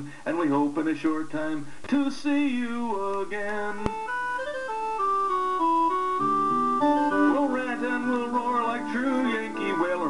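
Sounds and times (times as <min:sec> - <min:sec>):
electronic keyboard organ melody: 0:03.6 - 0:10.0.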